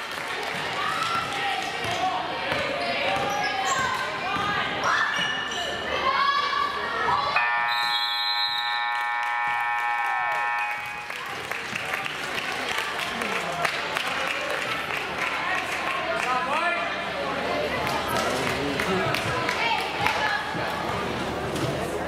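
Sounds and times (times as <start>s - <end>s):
scoreboard horn buzz: 7.4s - 11.2s.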